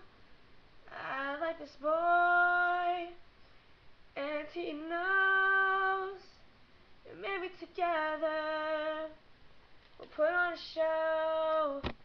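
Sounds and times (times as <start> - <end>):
woman singing unaccompanied: 0.9 - 3.2, 4.2 - 9.2, 10.0 - 11.9.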